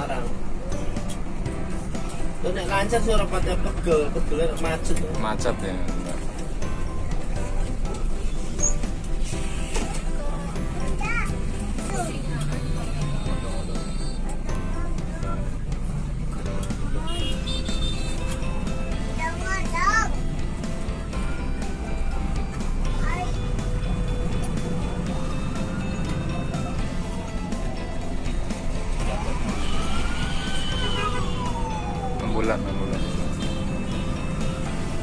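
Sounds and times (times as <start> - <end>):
bus engine rumble: 0.0 - 35.0
road noise: 0.0 - 35.0.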